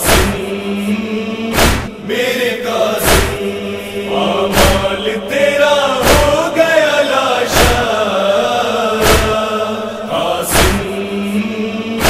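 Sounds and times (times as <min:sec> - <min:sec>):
heavy drum thumps: 0:00.0 - 0:00.5, 0:01.6 - 0:01.9, 0:03.0 - 0:03.4, 0:04.5 - 0:04.9, 0:06.0 - 0:06.4, 0:07.6 - 0:07.9, 0:09.0 - 0:09.4, 0:10.5 - 0:10.9
voices chanting a lament: 0:00.0 - 0:12.0.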